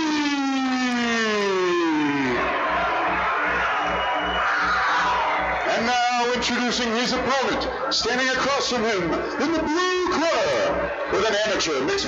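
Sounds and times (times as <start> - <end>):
crowd cheering: 0.0 - 12.0
ring announcer calling out: 0.9 - 12.0
music with steady beat: 2.2 - 5.7.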